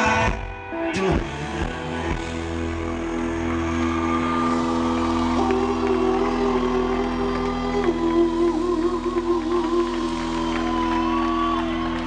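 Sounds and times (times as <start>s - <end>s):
electric guitar notes ringing: 0.0s - 12.0s.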